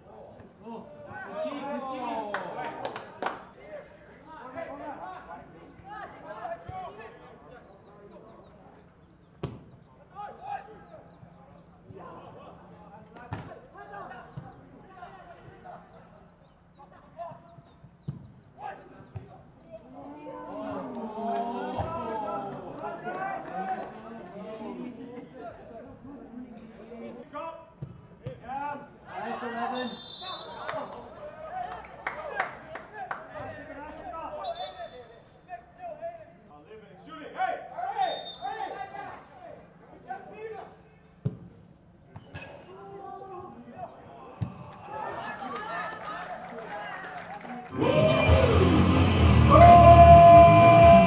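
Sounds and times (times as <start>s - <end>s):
players calling out: 47.7s - 51.0s.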